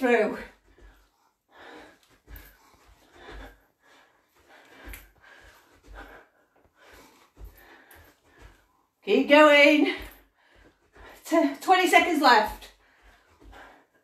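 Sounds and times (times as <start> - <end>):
woman breathing hard: 0.6 - 8.9, 10.0 - 11.3, 12.7 - 14.0.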